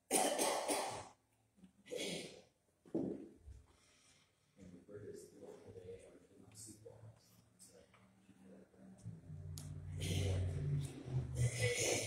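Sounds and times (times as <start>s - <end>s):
person coughing: 0.1s - 1.1s, 11.4s - 12.0s.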